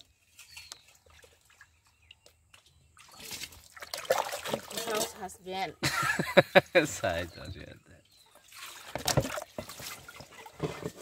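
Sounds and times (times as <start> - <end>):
water splashing onto ground: 0.4 - 5.3, 8.3 - 11.0.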